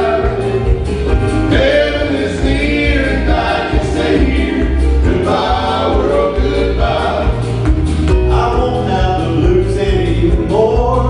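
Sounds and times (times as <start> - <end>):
men singing in harmony: 0.0 - 0.7, 1.5 - 7.6
instrumental backing track: 0.0 - 11.0.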